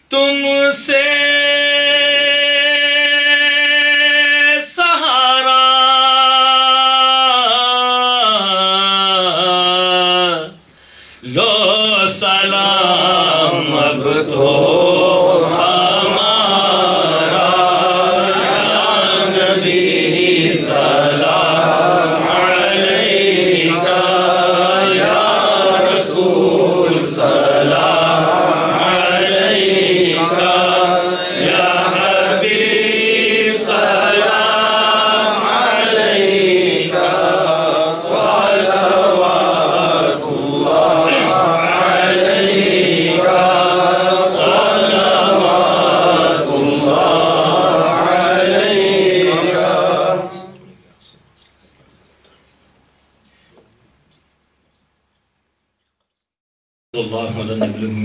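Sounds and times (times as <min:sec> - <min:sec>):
men chanting into microphones: 0:00.0 - 0:50.8.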